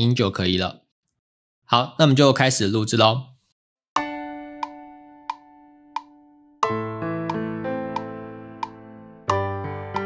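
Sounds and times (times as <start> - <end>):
metronome clicks: 4.0 - 10.0.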